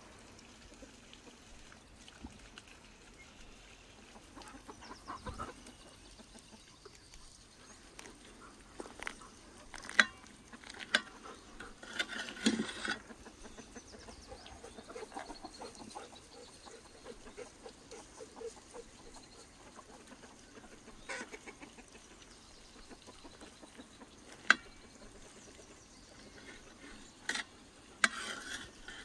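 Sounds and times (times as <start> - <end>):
chickens clucking: 0.6 - 29.0.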